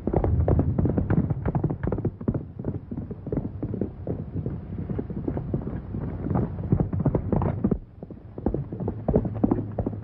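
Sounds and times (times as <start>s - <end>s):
horses galloping: 0.0s - 10.0s.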